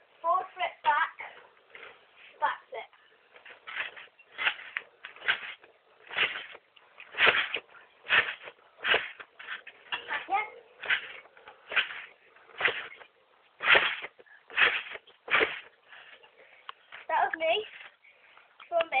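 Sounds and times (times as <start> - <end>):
trampoline bounce swish: 3.4 - 13.0, 13.6 - 15.7.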